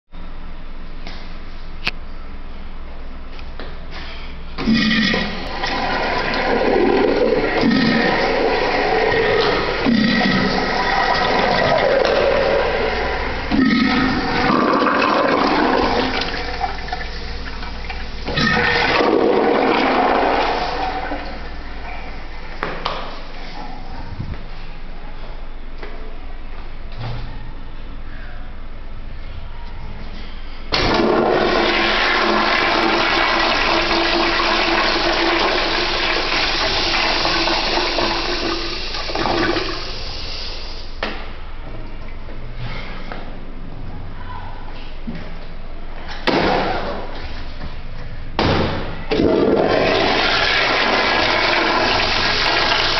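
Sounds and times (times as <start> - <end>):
urinal flushing: 4.6 - 23.6, 30.8 - 41.0, 49.1 - 52.9.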